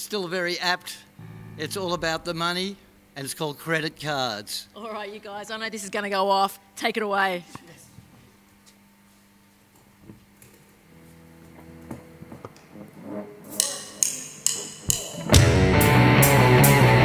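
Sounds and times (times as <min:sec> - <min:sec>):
live rock band playing: 0:01.2 - 0:02.4
sharp drum hits: 0:01.2 - 0:03.0.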